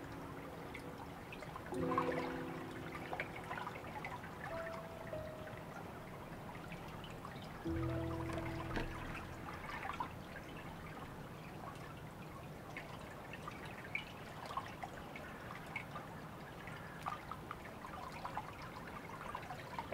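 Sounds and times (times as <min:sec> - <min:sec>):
water drips and splashes: 0:00.0 - 0:19.9
water trickling: 0:00.0 - 0:19.9.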